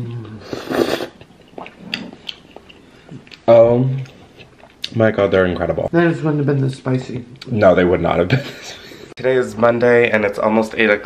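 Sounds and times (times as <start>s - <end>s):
person humming mm: 0.0s - 1.1s
wet chewing clicks: 1.1s - 5.0s.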